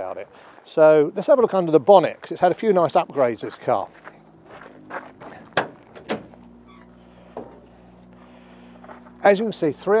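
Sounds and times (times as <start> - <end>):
faint steady hum: 0.0 - 10.0
metal latch clicks: 5.6 - 6.4.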